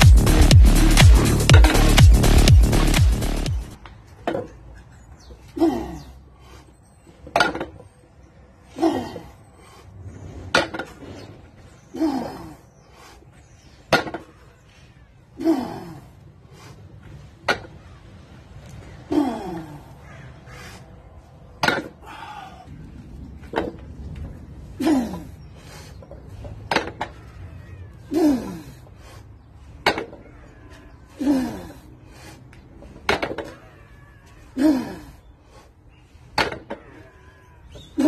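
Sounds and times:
person grunting with strain: 15.4 - 16.2, 19.1 - 19.9, 28.0 - 28.8, 34.6 - 35.2.

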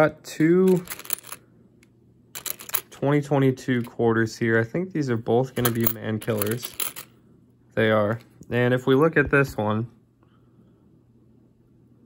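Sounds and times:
coins clicking together: 0.7 - 1.4, 2.4 - 3.0, 5.6 - 7.1.

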